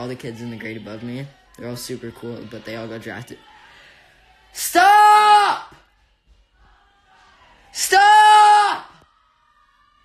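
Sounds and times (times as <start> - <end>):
man shouting: 4.6 - 5.7, 7.8 - 8.9.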